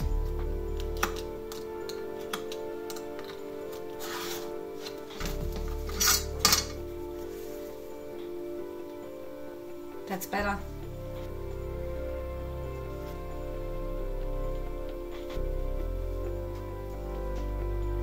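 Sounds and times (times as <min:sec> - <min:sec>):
background music: 0:00.0 - 0:18.0
knife scraping cuts: 0:03.9 - 0:05.2.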